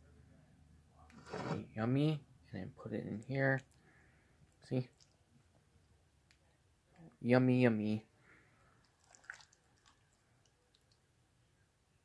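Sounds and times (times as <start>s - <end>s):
brief squishy sound: 9.0s - 10.0s.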